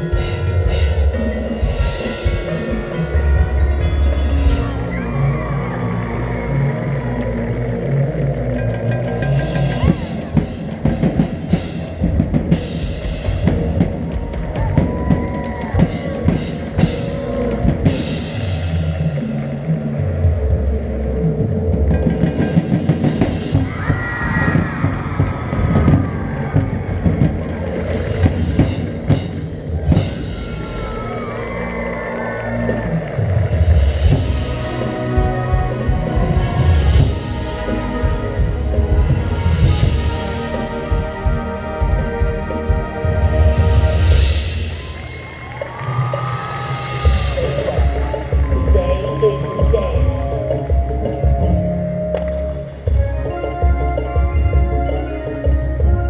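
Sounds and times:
drum and cymbal hits: 0.0 - 20.0, 21.5 - 31.8, 32.6 - 56.0
marching band music: 0.0 - 56.0
low brass chords: 25.8 - 45.0.

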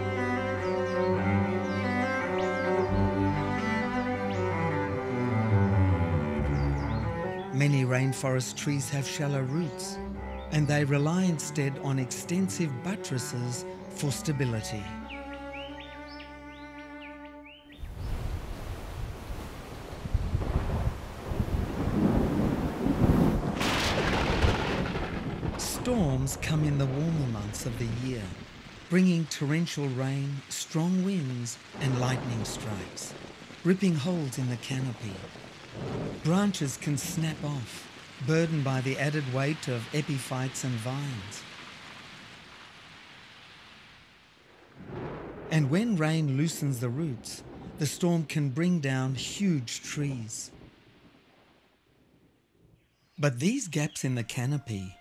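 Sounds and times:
rain: 0.0 - 16.4, 17.7 - 53.8
wind: 0.0 - 55.0
thunder rumbling: 17.8 - 52.7
sharp thunder crack: 17.9 - 28.9, 31.8 - 40.0, 44.5 - 46.4, 47.3 - 47.9.

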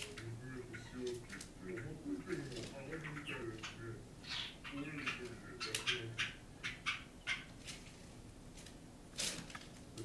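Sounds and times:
sparrow chirp: 0.6 - 7.5.

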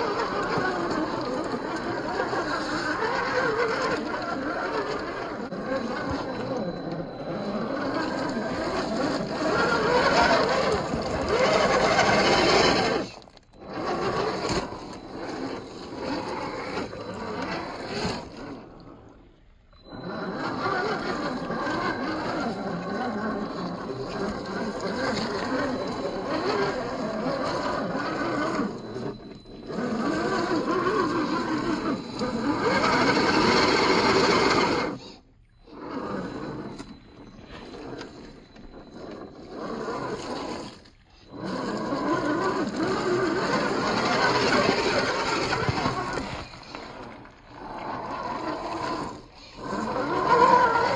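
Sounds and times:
electric motor whining: 0.0 - 50.9.

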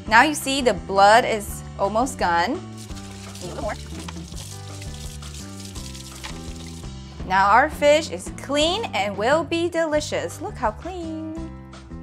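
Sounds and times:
background music low notes: 0.0 - 12.0
tap water running: 2.7 - 7.0.

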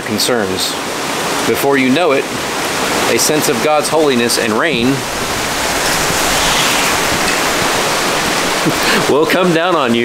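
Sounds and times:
heavy rain falling: 1.0 - 10.0.

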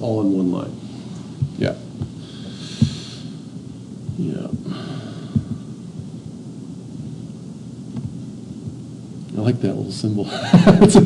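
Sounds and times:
low rumbling room noise: 0.0 - 11.0.

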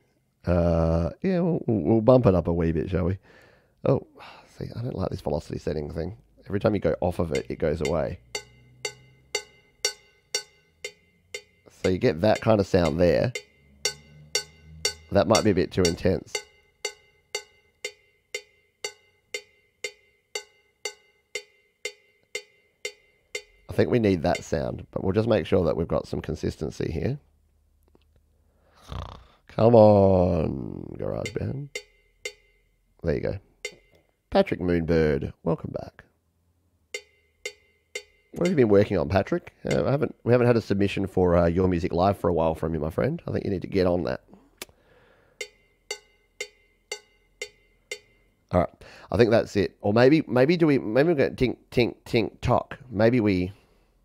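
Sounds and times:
cowbell strikes: 7.2 - 24.8, 31.1 - 32.9, 33.6 - 34.1, 37.0 - 40.2, 45.4 - 48.5.

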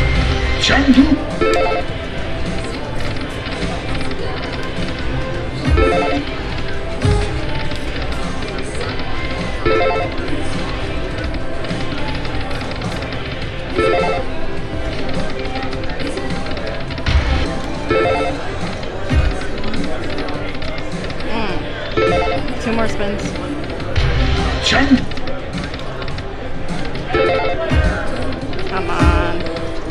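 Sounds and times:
crowd chatter: 0.0 - 29.9
slot machine game music: 0.0 - 29.9
slot machine chiming tones: 0.6 - 7.5, 8.3 - 16.8, 17.4 - 20.4, 21.2 - 23.7, 27.1 - 29.9.

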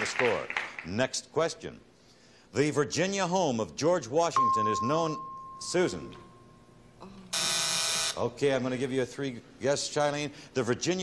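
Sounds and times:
game show buzzer: 7.3 - 8.4.

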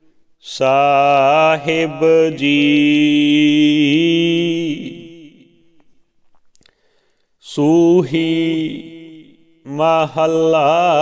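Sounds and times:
man chanting: 0.4 - 5.6, 7.4 - 11.0.

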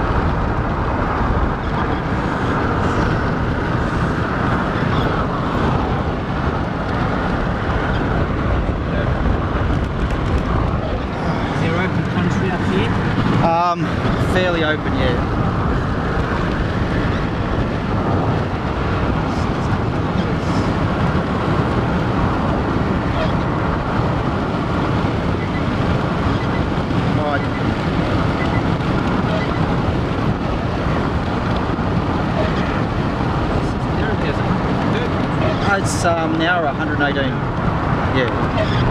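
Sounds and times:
car road and wind noise: 0.0 - 38.9.

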